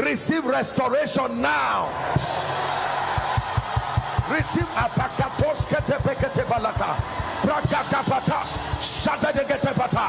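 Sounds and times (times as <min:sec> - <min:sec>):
congregation shouting: 0:01.4 - 0:10.0
quick low drum beat: 0:03.1 - 0:10.0.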